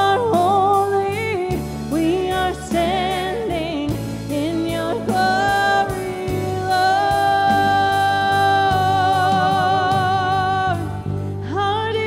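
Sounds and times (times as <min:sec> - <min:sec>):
sustained instrumental accompaniment: 0:00.0 - 0:12.0
person singing worship song: 0:04.4 - 0:12.0.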